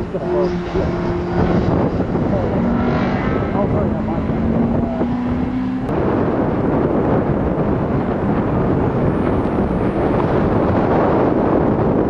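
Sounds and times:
car engine at high revs: 0.0 - 12.0
wind buffeting microphone: 0.0 - 12.0.

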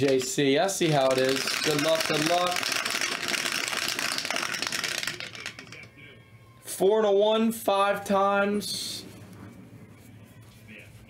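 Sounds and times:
dice rattling in plastic dome: 0.0 - 5.9.

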